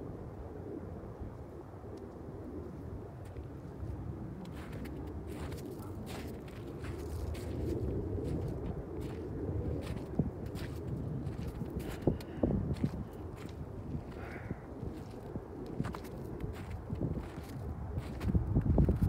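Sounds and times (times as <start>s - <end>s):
footsteps crunching on snow: 4.4s - 14.3s, 14.9s - 19.0s.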